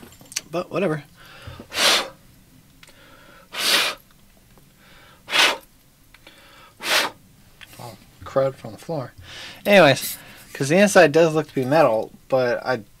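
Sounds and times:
breath drawn in: 0:01.2 - 0:02.2, 0:02.9 - 0:04.0, 0:04.8 - 0:05.7, 0:06.3 - 0:07.2
man blowing puffs of air: 0:01.2 - 0:02.2, 0:02.9 - 0:04.0, 0:04.8 - 0:07.2, 0:09.2 - 0:10.5.

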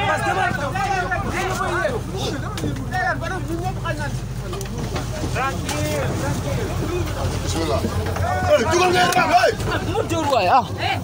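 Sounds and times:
crowd shouting: 0:00.0 - 0:02.4, 0:08.0 - 0:11.0.

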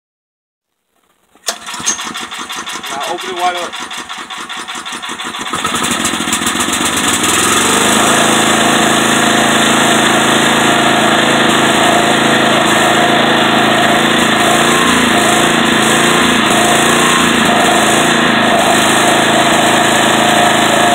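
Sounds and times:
portable generator engine running: 0:01.4 - 0:20.9.

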